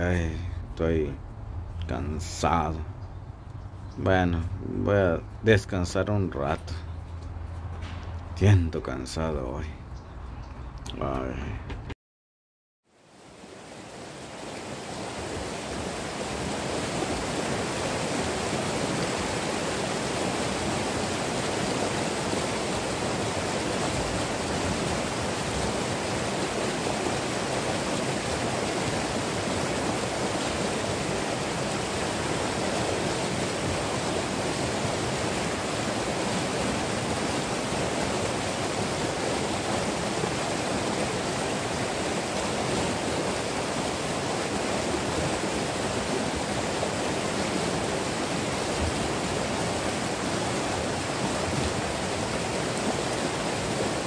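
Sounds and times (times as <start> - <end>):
stream rushing over rocks: 13.0 - 54.0.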